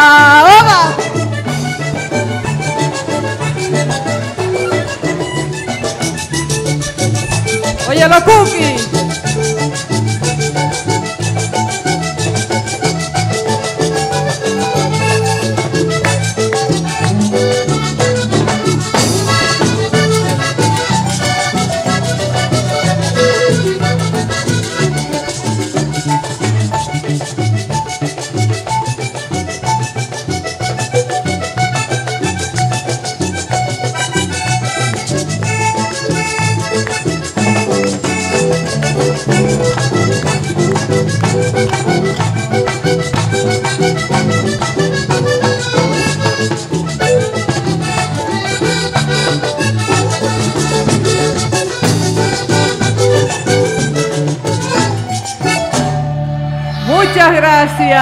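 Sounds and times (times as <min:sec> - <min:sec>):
button accordion melody: 0:00.0 - 0:58.0
live band playing merengue: 0:00.0 - 0:58.0.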